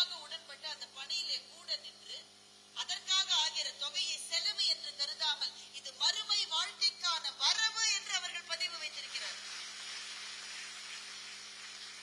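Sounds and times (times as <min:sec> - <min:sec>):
audience applauding: 0:09.4 - 0:12.0.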